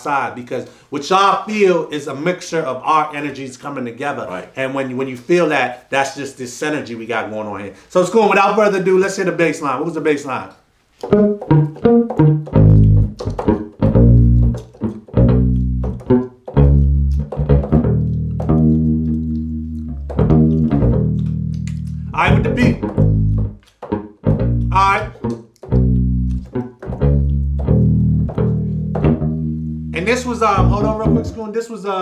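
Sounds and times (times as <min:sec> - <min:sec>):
plucked electric bass line: 0:11.1 - 0:31.4.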